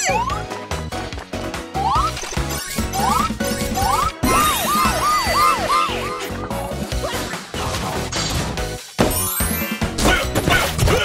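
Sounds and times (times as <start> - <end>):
upbeat children's music: 0.0 - 11.0
cartoon police siren yelping: 4.2 - 6.2.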